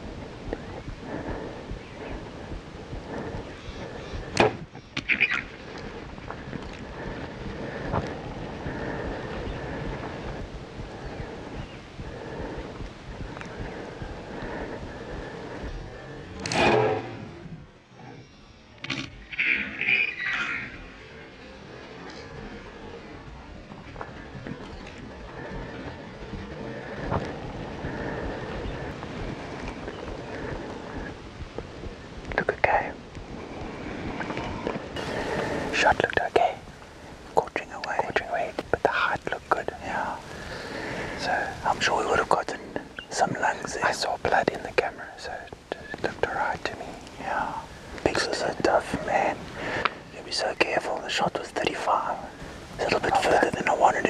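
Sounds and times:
hushed whispering: 0.0 - 18.6, 20.7 - 54.0
low background hiss: 0.0 - 54.0.

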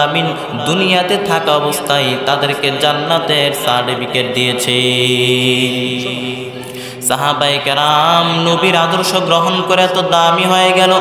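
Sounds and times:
man chanting over a microphone: 0.0 - 11.0.

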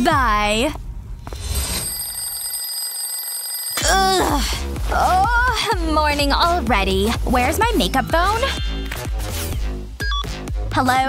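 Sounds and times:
alarm clock bell ringing: 1.4 - 4.6.

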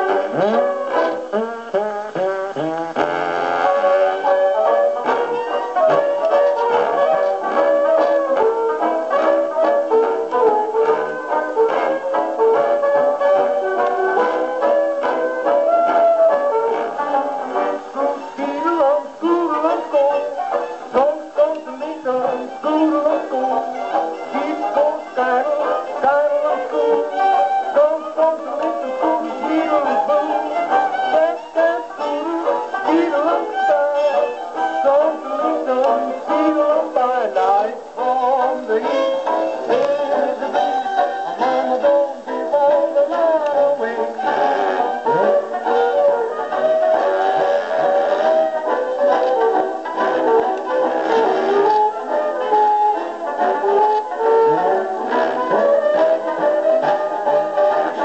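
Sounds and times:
jug band music on phonograph: 0.0 - 58.0.

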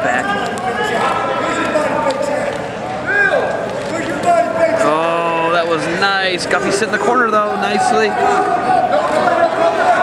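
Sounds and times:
men talking: 0.0 - 10.0.

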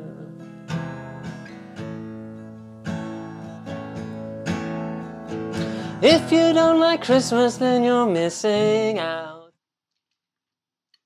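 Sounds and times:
acoustic guitar strumming chords: 0.0 - 9.4.

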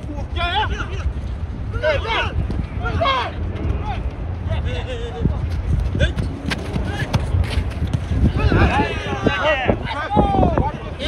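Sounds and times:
wind rumble on microphone: 0.0 - 11.0
players shouting: 0.2 - 5.4, 6.0 - 11.0.

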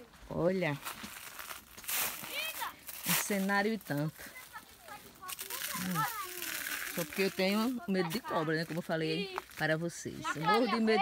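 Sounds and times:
walking through rustling dry leaves: 0.0 - 10.8.

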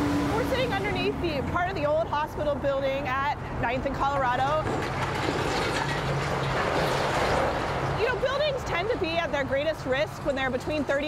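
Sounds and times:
heavy machinery engine drone: 0.0 - 2.3
concrete crunching and debris falling: 4.3 - 7.9.

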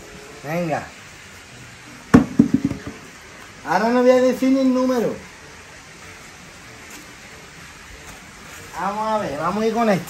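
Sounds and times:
dice thumping on dirt: 2.2 - 3.0.

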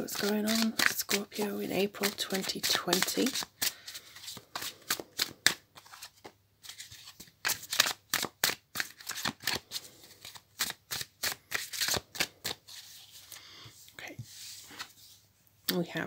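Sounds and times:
cards being shuffled: 0.0 - 13.4.

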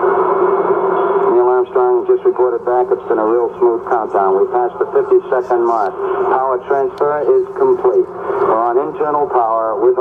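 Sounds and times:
radio hiss with steady hum: 0.0 - 10.0
announcer speaking: 1.3 - 10.0.

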